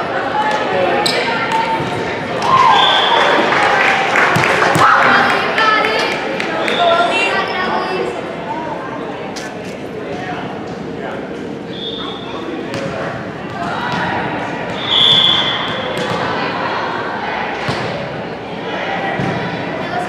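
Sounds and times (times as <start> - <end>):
crowd chatter echoing: 0.0 - 20.0
referee's whistle: 2.7 - 3.2, 11.7 - 12.3, 14.8 - 15.9.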